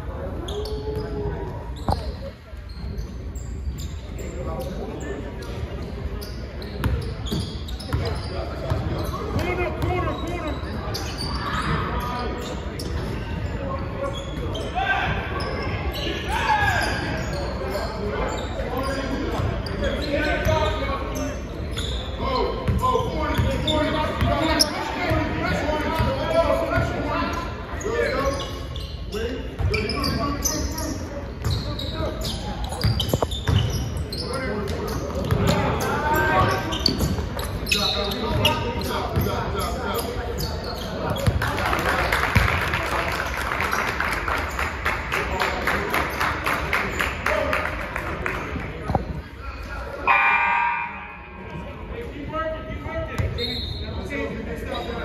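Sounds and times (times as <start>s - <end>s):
echoing shouts and voices: 0.0s - 2.4s, 8.0s - 32.8s, 34.0s - 55.0s
crowd noise: 0.0s - 55.0s.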